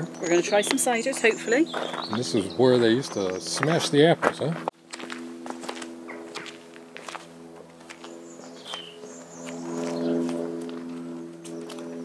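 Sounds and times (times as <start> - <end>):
footsteps on cobbles: 0.6 - 12.0.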